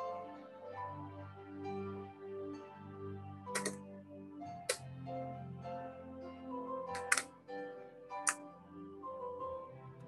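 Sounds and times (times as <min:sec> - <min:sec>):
gentle piano music: 0:00.0 - 0:10.0.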